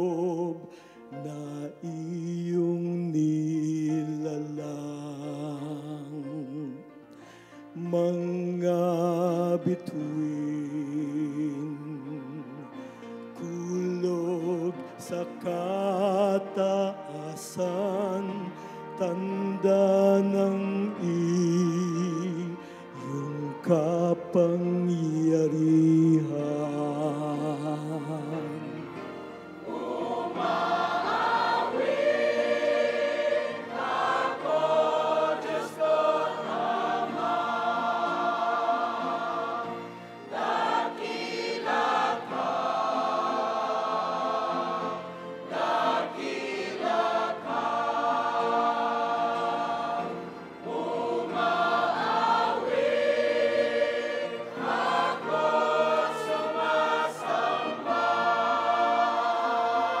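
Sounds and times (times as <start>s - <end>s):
choir singing a hymn: 0.0s - 60.0s.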